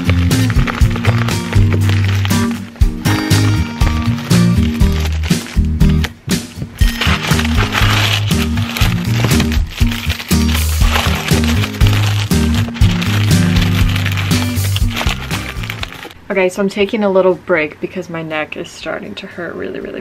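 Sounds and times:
background music with steady beat: 0.0s - 16.2s.

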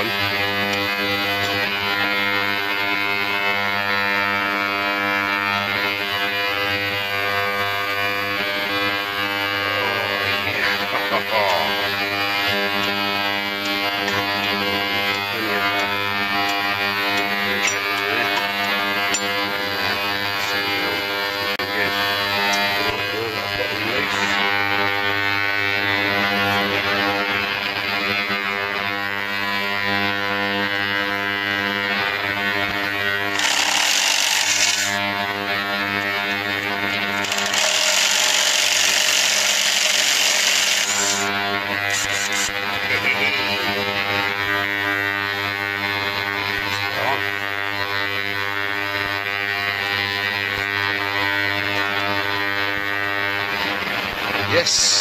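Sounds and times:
cordless power driver running: 0.0s - 55.0s.

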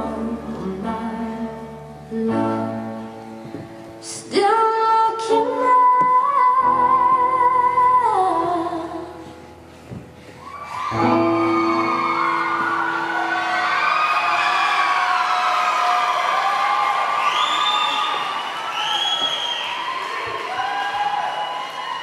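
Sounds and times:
audience cheering and whooping: 10.4s - 22.0s
high shrill screams: 10.4s - 22.0s.

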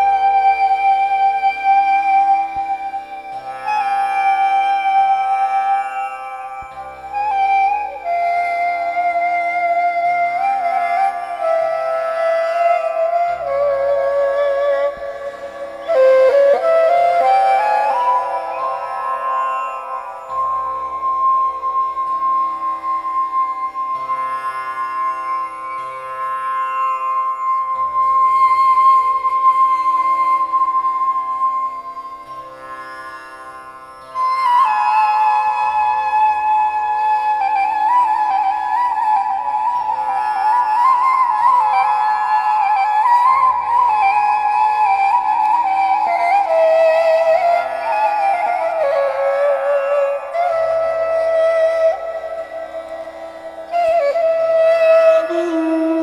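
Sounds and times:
ney flute melody: 0.0s - 56.0s
plucked tanpura drone: 0.0s - 56.0s.

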